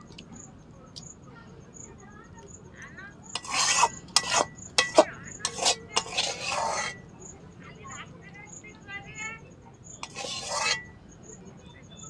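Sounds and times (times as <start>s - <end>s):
metal spatula scraping pan: 3.3s - 7.1s, 10.0s - 11.0s
metal clicking on pan: 3.4s - 7.0s.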